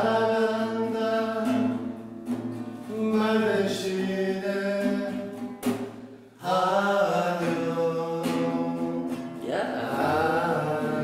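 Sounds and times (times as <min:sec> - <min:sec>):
man singing a slow ballad: 0:00.0 - 0:01.8, 0:02.8 - 0:05.4, 0:06.4 - 0:11.0
classical guitar: 0:00.0 - 0:11.0.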